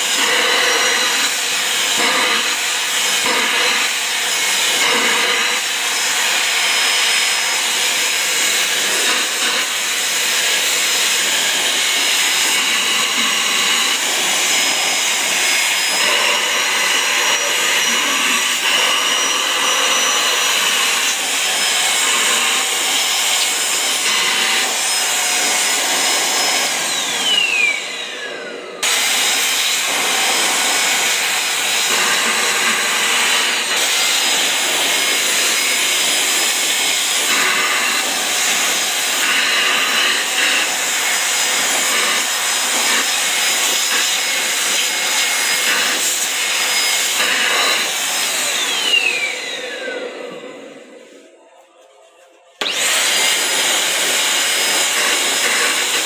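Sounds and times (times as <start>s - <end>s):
vacuum nozzle drawn over fabric: 0.0s - 51.2s
handheld vacuum cleaner whining: 0.0s - 56.0s.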